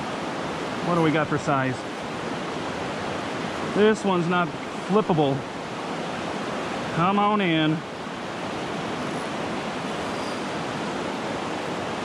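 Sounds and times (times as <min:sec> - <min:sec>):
river rapids rushing: 0:00.0 - 0:12.0.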